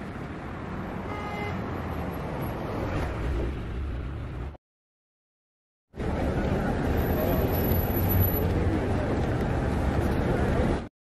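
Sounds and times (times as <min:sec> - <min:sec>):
road traffic passing: 0:00.0 - 0:04.6, 0:06.0 - 0:10.9
bus engine rumble: 0:06.0 - 0:10.9.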